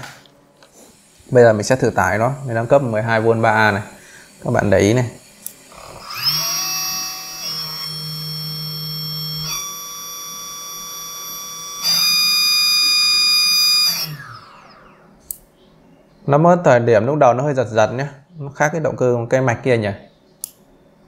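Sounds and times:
model aircraft motor whine: 2.4 - 15.2.

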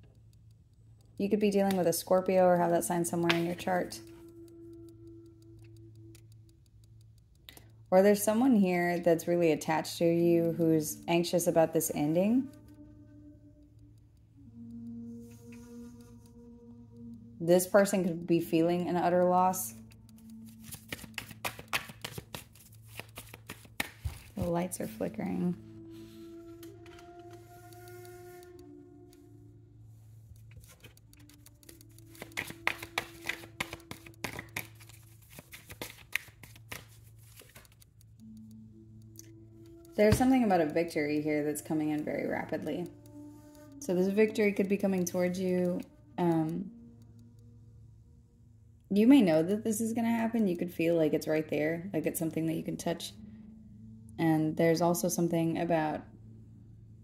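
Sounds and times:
low steady hum: 0.0 - 57.0
soft ambient drone music: 0.0 - 57.0
faint wavering ringing tone: 2.9 - 6.6, 8.4 - 20.6, 24.4 - 30.8, 38.2 - 49.4, 52.0 - 57.0.

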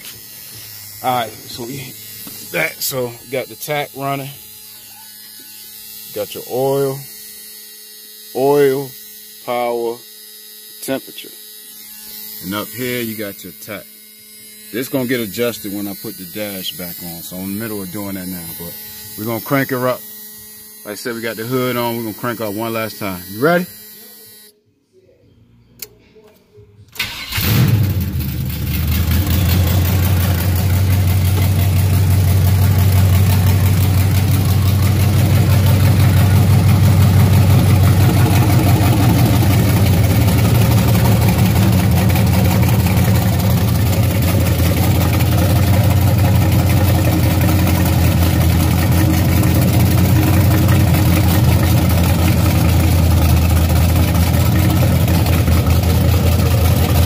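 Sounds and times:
car engine starting and idling: 27.0 - 57.0.

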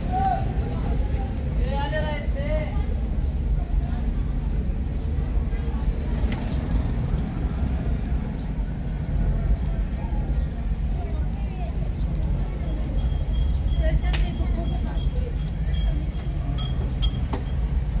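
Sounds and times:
low rumble of traffic: 0.0 - 18.0.

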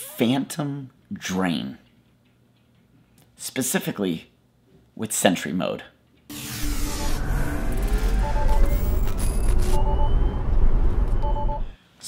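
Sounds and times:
short electronic beeps: 6.6 - 11.8
deep rumble: 7.2 - 11.8.

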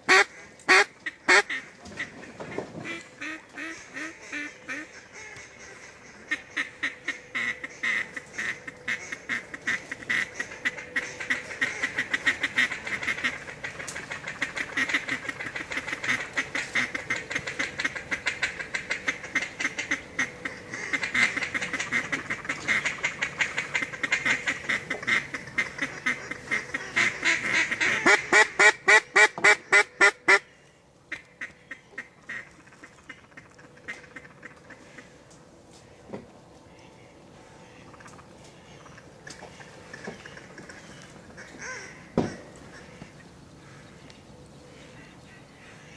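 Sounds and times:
duck quacking: 0.1 - 30.5, 31.1 - 35.2, 36.7 - 43.9, 44.8 - 45.9.

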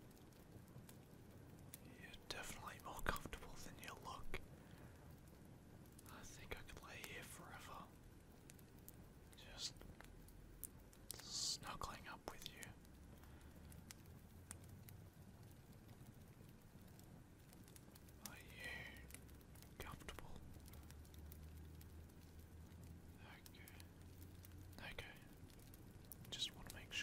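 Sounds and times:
faint steady hiss: 0.0 - 27.0
person breathing softly: 4.5 - 5.2, 12.6 - 13.8.

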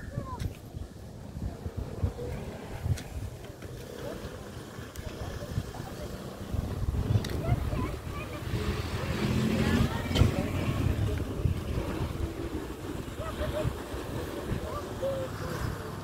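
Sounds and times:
people's voices in background: 0.0 - 16.0
wind on microphone: 0.0 - 16.0.

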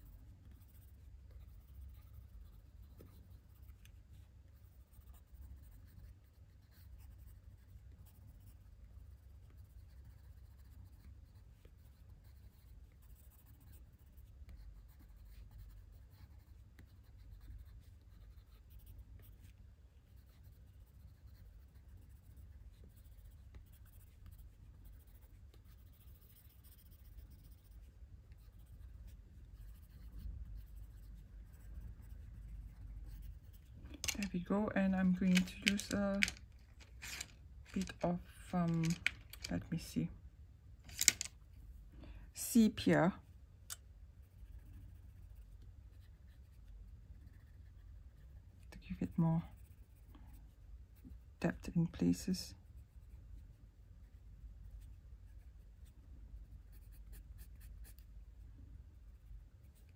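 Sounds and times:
pencil scratching on paper: 0.0 - 40.0, 44.2 - 58.2.

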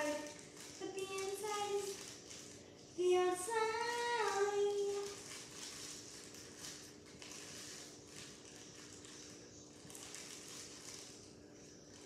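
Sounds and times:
child singing: 0.0 - 2.0, 3.0 - 5.2.

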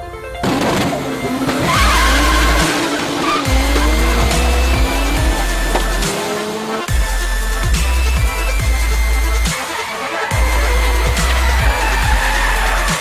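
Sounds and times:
car engine revving: 0.4 - 13.0
tyres squealing: 0.9 - 13.0
electronic music with deep bass: 1.0 - 13.0.

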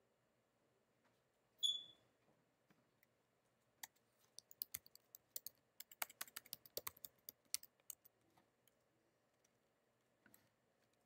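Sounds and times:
short high-pitched squeak: 1.6 - 2.0.

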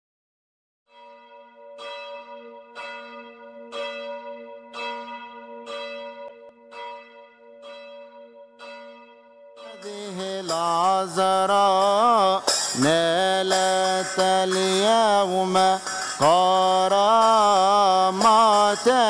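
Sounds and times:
church bell tolling: 0.9 - 19.0
hymn singing with music: 9.6 - 19.0.

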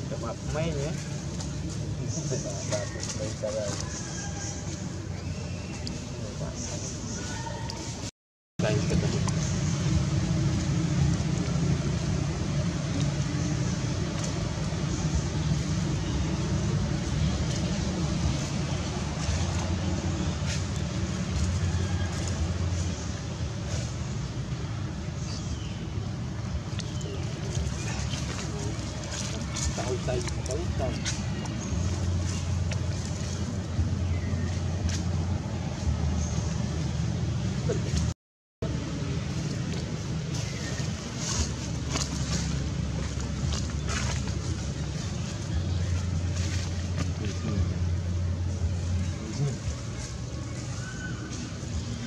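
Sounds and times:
low outdoor rumble: 0.0 - 52.0.

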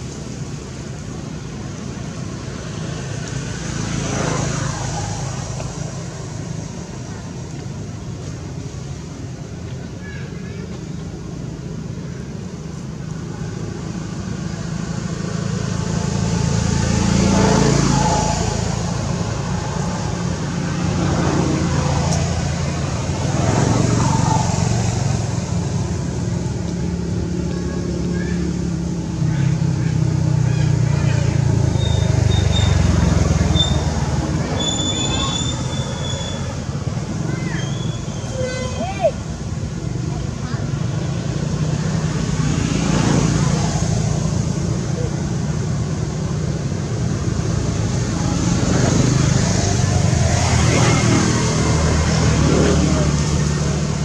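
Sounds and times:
rumble of passing vehicles: 0.0 - 54.0.

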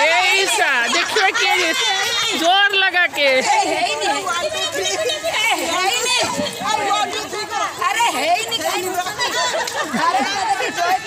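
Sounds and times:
women chattering and calling out: 0.0 - 11.0.

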